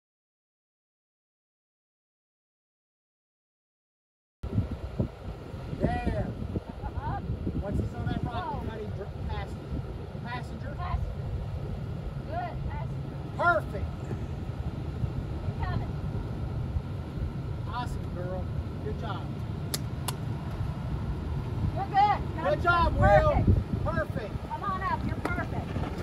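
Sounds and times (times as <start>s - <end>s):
engine running low: 4.4s - 26.0s.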